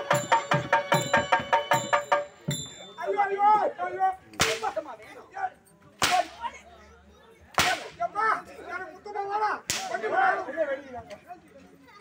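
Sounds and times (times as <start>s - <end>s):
whip cracks: 4.4s - 4.8s, 6.0s - 6.4s, 7.6s - 7.9s, 9.7s - 10.0s
voices shouting: 7.6s - 10.8s.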